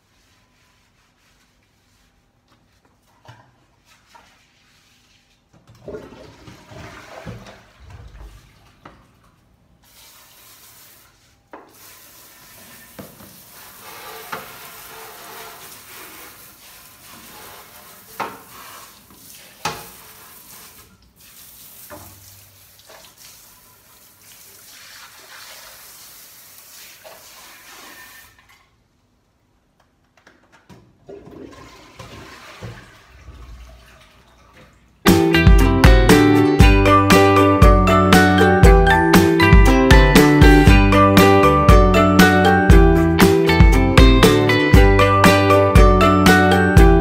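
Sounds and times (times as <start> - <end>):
toilet brush sloshing water: 0.0 - 28.8, 31.0 - 35.1.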